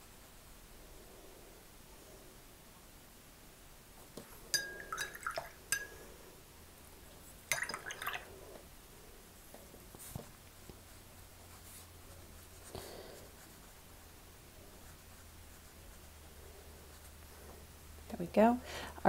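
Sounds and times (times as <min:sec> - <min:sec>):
brush clinking against glass jar: 0:04.5 - 0:06.1, 0:07.5 - 0:08.3.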